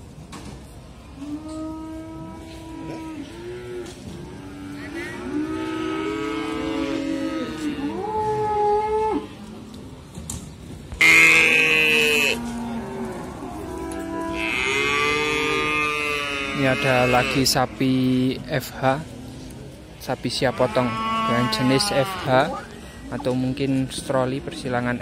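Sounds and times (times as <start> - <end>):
cattle mooing: 1.2 - 9.3, 11.0 - 17.7, 20.3 - 22.7.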